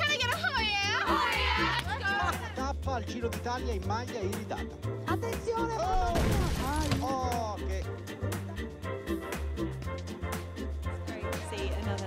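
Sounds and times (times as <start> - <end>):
music with steady bass beat: 7.2 - 12.0.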